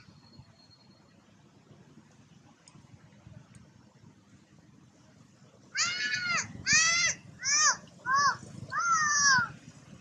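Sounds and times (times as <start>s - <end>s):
young monkey screaming: 5.8s - 9.5s.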